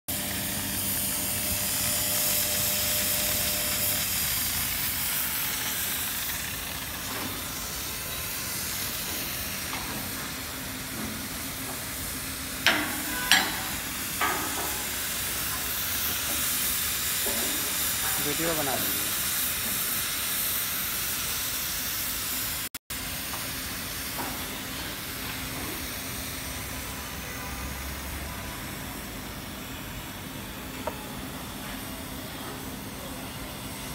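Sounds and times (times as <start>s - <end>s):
cutting torch hissing: 0.1s - 33.9s.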